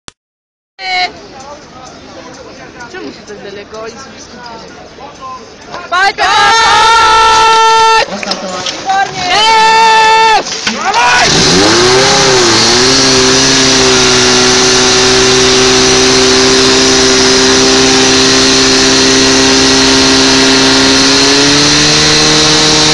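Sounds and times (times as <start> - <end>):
fire pump engine running hard: 11.1 - 22.9.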